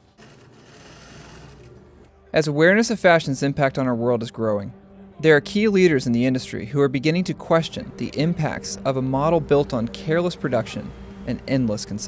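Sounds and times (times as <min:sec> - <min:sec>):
sewing machine rattling: 0:00.0 - 0:01.8.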